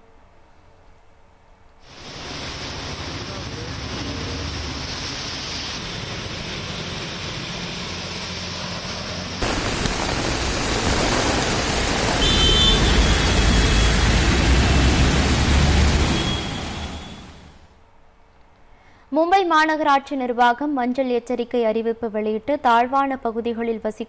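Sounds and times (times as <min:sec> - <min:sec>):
surf and rain hiss: 0:01.8 - 0:17.9
rushing floodwater and rain: 0:01.9 - 0:17.7.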